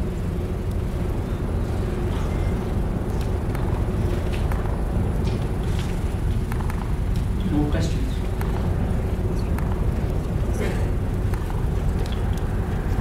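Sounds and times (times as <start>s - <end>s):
faint hum: 0.0s - 13.0s
low rumble: 0.0s - 13.0s.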